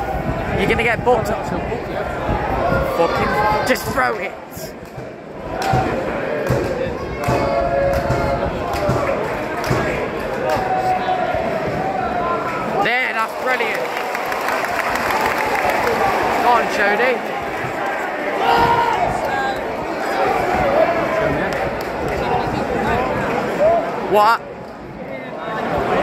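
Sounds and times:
crowd noise: 0.0 - 26.0
fans shouting and chanting: 0.0 - 26.0.

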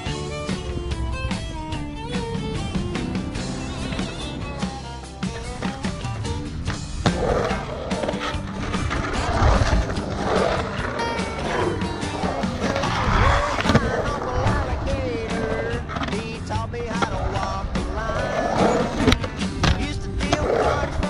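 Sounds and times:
rock song: 0.0 - 21.0
skateboard wheels rolling on concrete: 0.0 - 21.0
skateboard hitting coping: 0.4 - 21.0.

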